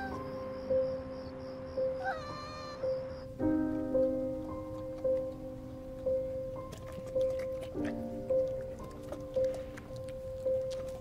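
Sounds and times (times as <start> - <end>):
soft background music: 0.0 - 11.0
cat meowing: 2.0 - 3.1.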